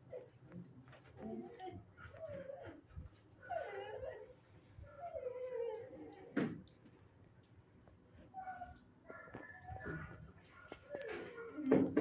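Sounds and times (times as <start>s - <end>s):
dog whining: 1.3s - 6.2s.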